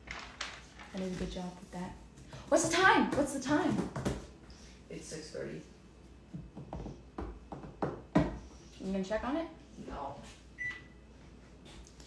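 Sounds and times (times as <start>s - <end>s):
oven control panel beep: 10.6s - 11.0s.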